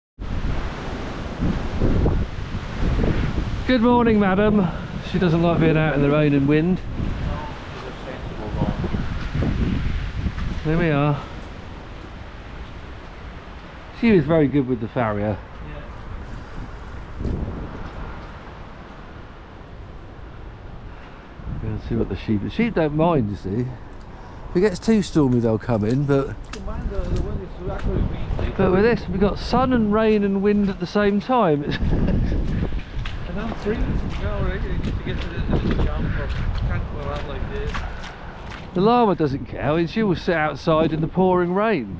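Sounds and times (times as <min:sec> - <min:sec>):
wind buffeting microphone: 0:00.2 - 0:41.9.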